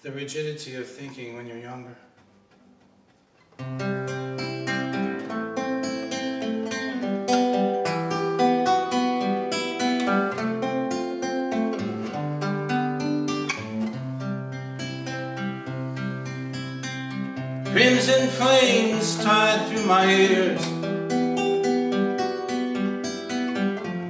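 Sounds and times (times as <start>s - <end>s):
classical guitar playing: 2.3s - 24.0s.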